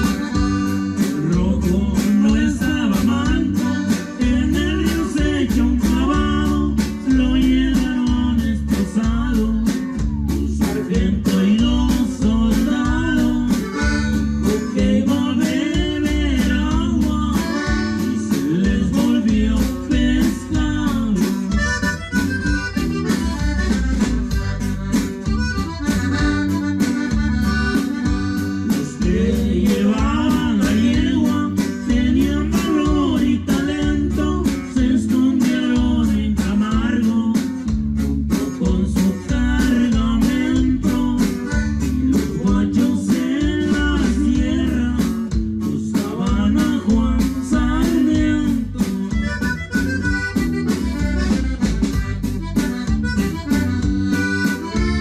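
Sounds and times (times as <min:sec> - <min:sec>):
button accordion melody: 0:00.0 - 0:36.0, 0:36.8 - 0:45.7, 0:46.5 - 0:55.0
drum kit steady beat: 0:00.0 - 0:55.0
guitar: 0:00.0 - 0:55.0.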